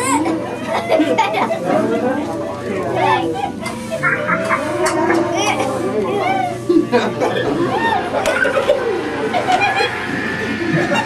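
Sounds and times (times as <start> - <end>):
children talking and exclaiming: 0.0 - 11.0.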